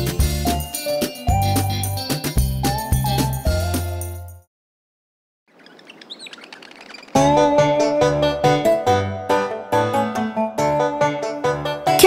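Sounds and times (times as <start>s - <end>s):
birds chirping: 5.5s - 7.4s
soft outdoor background: 5.5s - 9.5s.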